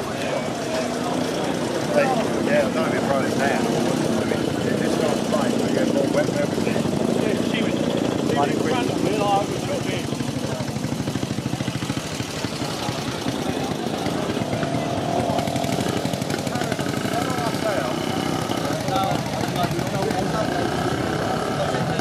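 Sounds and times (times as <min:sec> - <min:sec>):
crowd chatter: 0:00.0 - 0:22.0
motorcycle engine running: 0:00.0 - 0:22.0.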